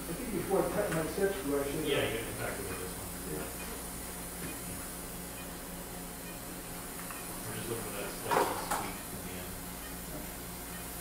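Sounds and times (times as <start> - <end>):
equipment hum: 0.0 - 11.0.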